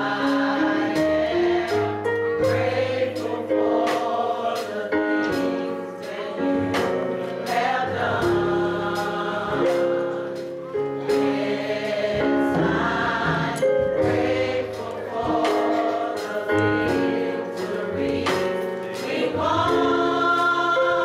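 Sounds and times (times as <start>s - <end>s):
gospel choir singing: 0.0s - 21.0s
regular beat: 0.0s - 21.0s.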